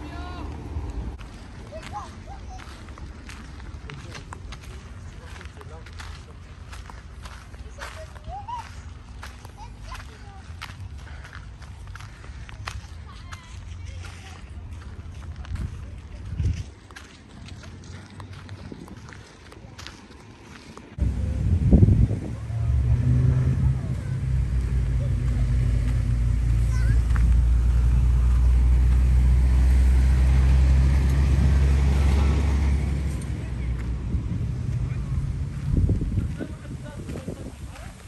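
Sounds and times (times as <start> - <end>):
low engine hum: 0.0 - 38.0
footsteps on gravel: 1.2 - 21.0, 24.6 - 29.2, 33.0 - 38.0.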